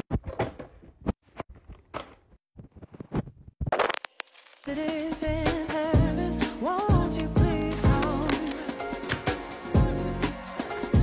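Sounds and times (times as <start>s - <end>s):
plastic packaging crinkling: 3.8s - 4.9s.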